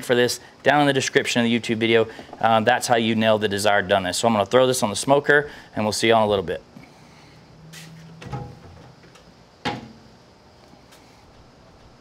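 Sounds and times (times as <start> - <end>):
low tone: 7.3 - 8.7
metal lid clanging shut: 8.2 - 8.9, 9.6 - 10.1.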